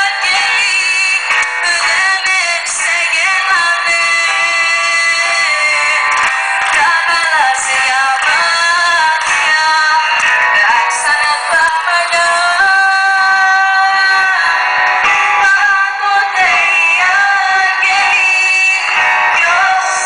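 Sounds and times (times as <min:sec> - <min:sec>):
live band playing: 0:00.0 - 0:20.0
woman singing into microphone: 0:00.0 - 0:20.0.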